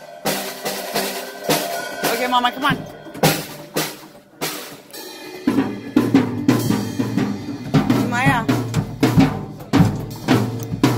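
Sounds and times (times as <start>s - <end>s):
cymbals ringing: 0.0s - 10.2s
drum hits on snare and toms: 0.0s - 10.9s.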